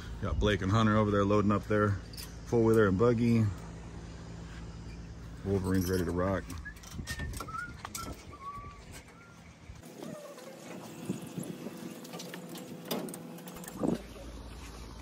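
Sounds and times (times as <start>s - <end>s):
birds calling: 3.6s - 13.4s.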